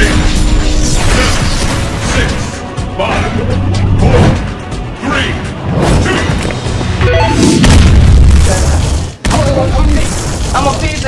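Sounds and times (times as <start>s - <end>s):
music: 0.0s - 11.0s
deep boom sound effect: 7.4s - 9.0s.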